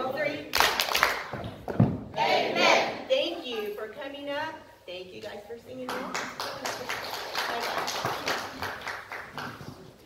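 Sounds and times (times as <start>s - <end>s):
group of people applauding: 0.6s - 1.3s, 5.9s - 9.9s.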